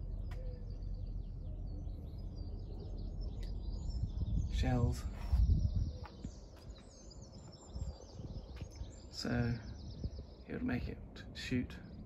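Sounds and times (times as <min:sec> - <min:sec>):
small birds chirping: 0:00.0 - 0:12.0
wind rumble on microphone: 0:00.0 - 0:12.0.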